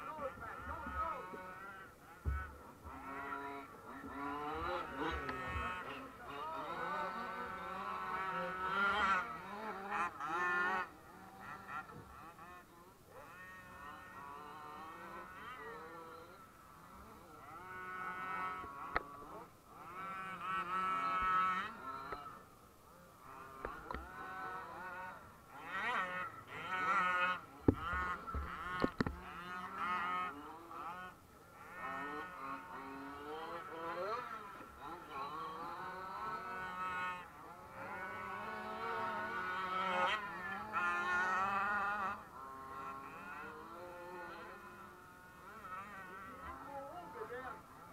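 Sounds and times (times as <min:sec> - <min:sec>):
small motors buzzing and revving: 0:00.0 - 0:47.9.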